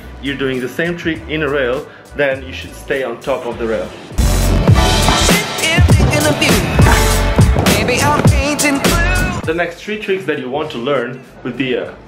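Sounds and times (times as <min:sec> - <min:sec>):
music with deep bass hits: 0:04.1 - 0:09.6.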